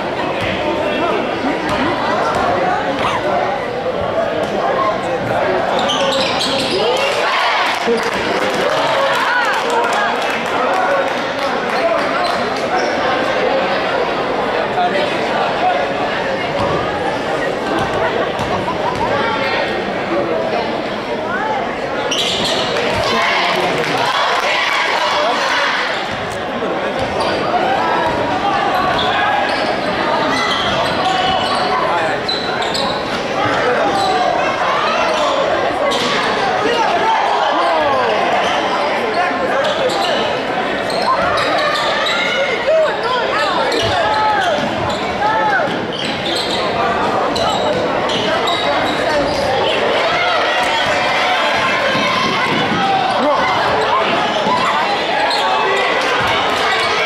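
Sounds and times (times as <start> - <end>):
sneakers squeaking: 4.3 - 7.2, 12.0 - 13.2, 17.7 - 19.7, 22.0 - 23.5, 25.9 - 36.4, 37.7 - 42.6, 43.3 - 57.0.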